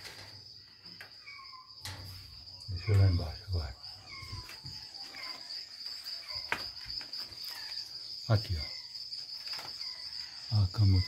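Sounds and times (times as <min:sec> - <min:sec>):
night insects trilling: 0:00.0 - 0:11.0.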